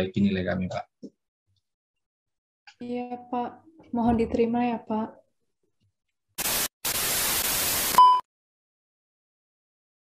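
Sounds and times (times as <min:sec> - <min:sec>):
static hiss: 0:06.4 - 0:08.0.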